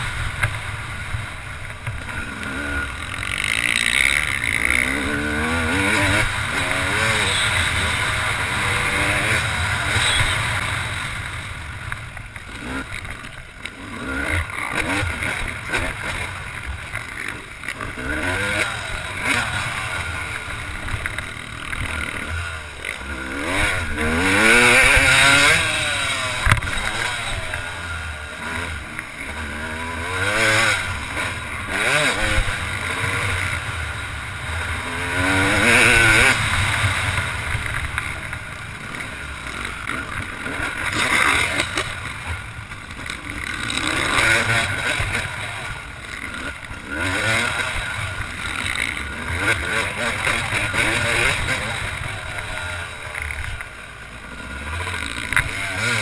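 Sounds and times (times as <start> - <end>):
motocross engine revving: 0.0 - 56.0.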